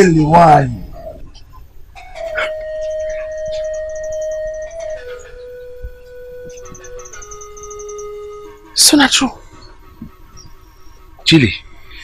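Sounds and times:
high pulsing synth pattern: 1.1s - 12.0s
sustained synthesizer note: 1.2s - 12.0s.

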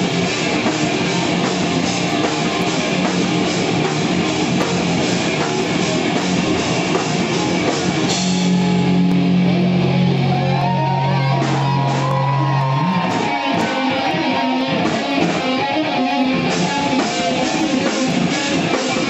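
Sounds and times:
death metal band playing live: 0.0s - 19.0s.

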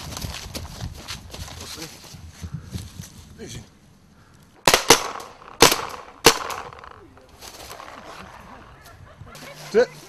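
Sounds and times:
paintball marker shots: 4.6s - 7.0s.

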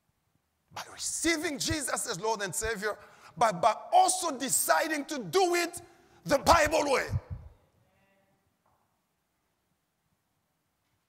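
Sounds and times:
man's voice trailing off: 5.2s - 7.5s.

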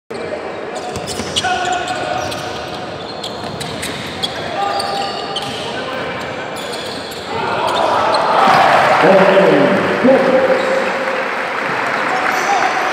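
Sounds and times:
sneaker squeaks: 0.1s - 8.4s
crowd voices echoing: 0.5s - 12.9s.

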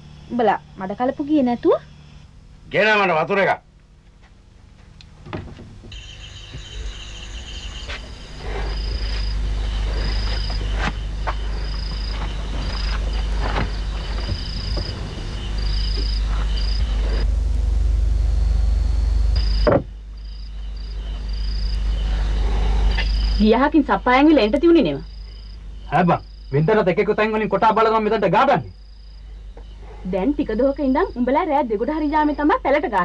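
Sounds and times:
crickets chirping: 0.0s - 33.0s
steady low rumble: 3.6s - 26.9s.

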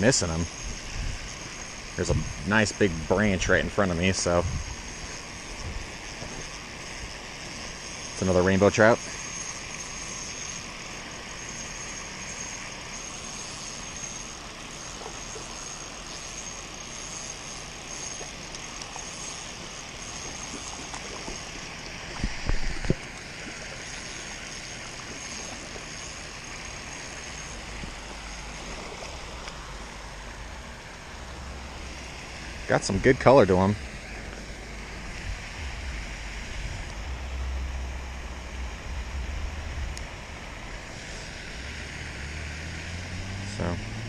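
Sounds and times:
fountain spraying water: 0.0s - 44.0s.

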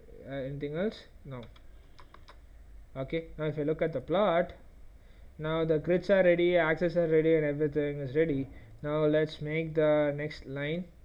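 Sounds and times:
faint keyboard keystrokes: 1.4s - 2.4s.

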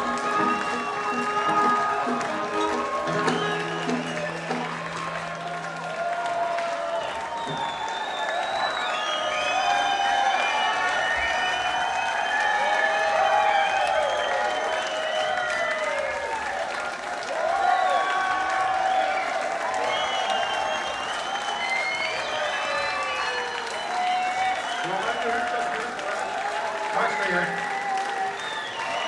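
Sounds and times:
audience clapping: 0.0s - 29.0s
crowd whooping and shouting: 0.0s - 29.0s.

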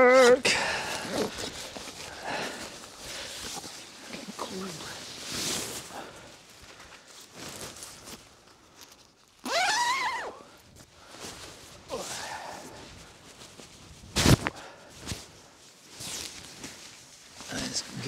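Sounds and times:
tent fabric rustling: 0.0s - 18.0s.

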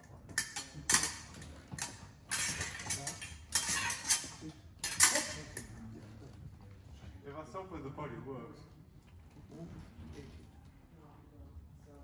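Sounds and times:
metallic clicks of blades clashing: 0.4s - 5.7s.

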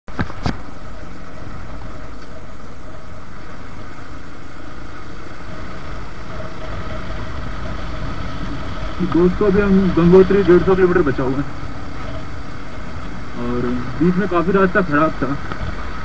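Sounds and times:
motorcycle engine running: 0.1s - 16.0s.

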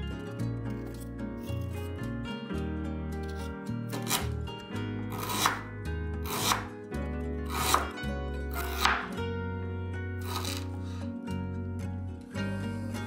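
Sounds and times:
knife slicing on wooden board: 3.2s - 4.4s, 5.1s - 6.7s, 7.5s - 9.2s, 10.2s - 10.9s.

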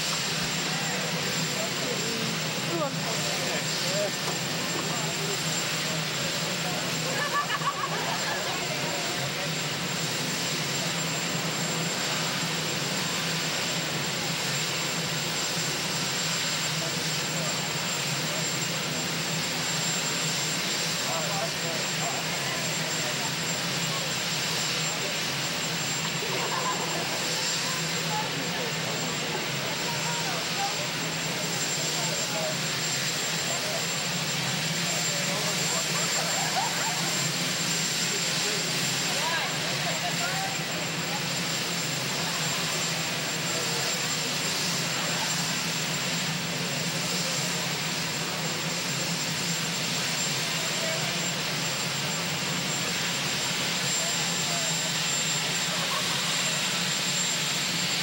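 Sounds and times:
faint indistinct voices: 0.0s - 58.0s
helicopter turbine engines: 0.0s - 58.0s.

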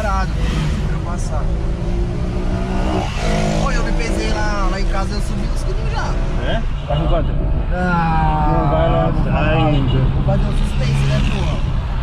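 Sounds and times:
car engine and road noise: 0.0s - 12.0s.

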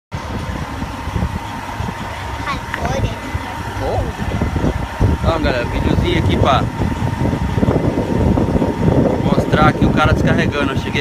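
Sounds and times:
diesel truck engine idling: 0.2s - 11.0s
distant voices: 0.2s - 11.0s
faint steady whine: 0.2s - 11.0s.

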